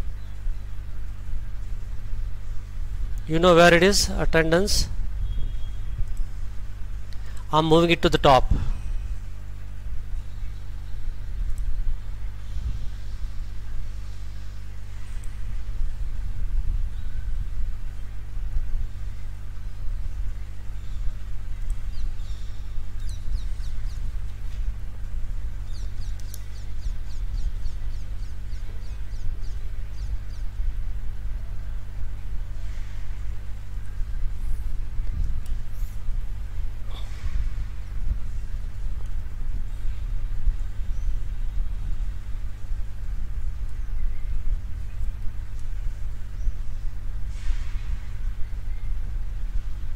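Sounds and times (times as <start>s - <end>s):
low electrical hum: 0.0s - 49.9s
faint clicks: 26.1s - 26.5s.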